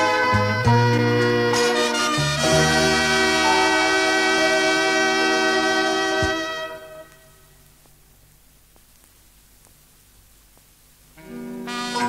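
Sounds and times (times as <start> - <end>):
band with horns holding chord: 0.0 - 7.4, 11.2 - 12.0.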